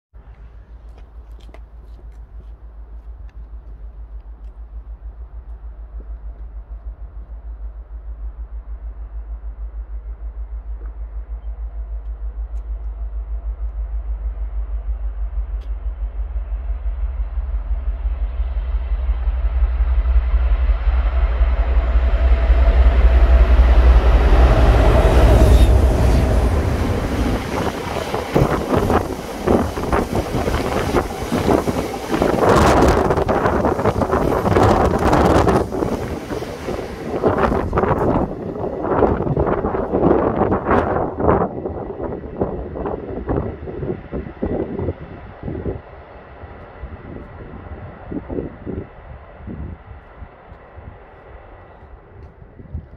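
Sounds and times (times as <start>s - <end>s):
diesel locomotive engines: 0.1s - 52.9s.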